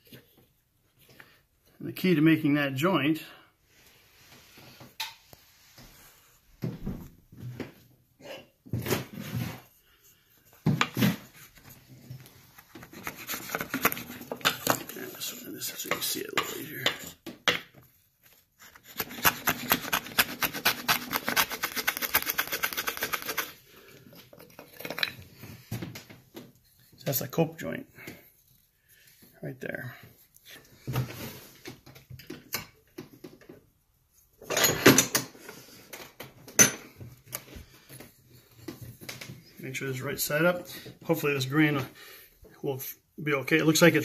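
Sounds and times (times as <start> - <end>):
saw rasping through wood: 18.7 - 23.5.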